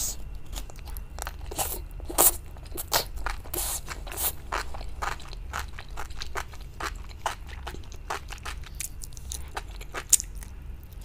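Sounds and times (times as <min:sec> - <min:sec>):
person chewing crunchy food: 0:00.0 - 0:11.0.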